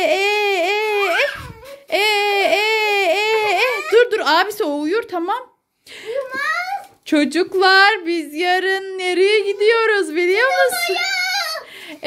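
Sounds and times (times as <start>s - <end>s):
woman crooning a lullaby: 0.0s - 4.1s.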